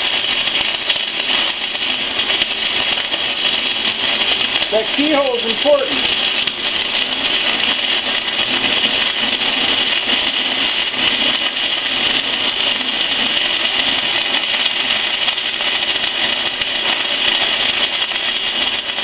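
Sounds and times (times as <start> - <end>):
welding arc crackling: 0.0 - 19.0.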